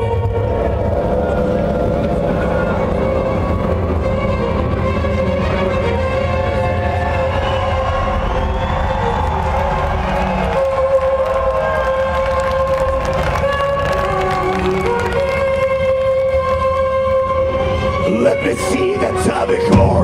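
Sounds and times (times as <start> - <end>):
heavy low rumble: 0.0 - 14.9
held orchestral notes: 0.0 - 20.0.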